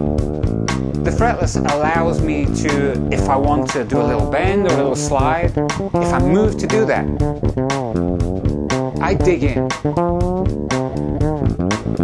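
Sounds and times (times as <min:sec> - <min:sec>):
fretless electric bass sliding notes: 0:00.0 - 0:12.0.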